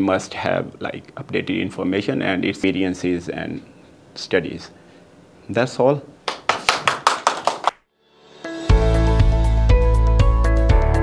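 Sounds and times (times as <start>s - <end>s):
audience clapping: 6.2s - 7.8s.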